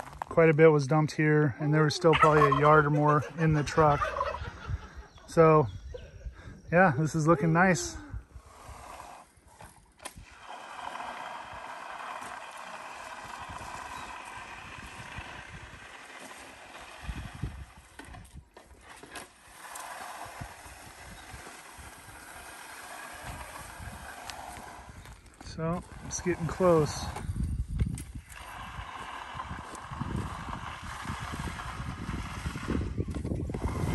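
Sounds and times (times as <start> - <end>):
float scraping wet concrete: 0.0 - 4.7, 7.0 - 33.9.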